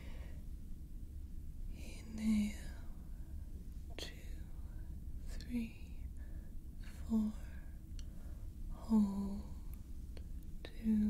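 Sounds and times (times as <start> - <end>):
person whispering: 1.7 - 2.9, 3.9 - 6.1, 10.6 - 11.0.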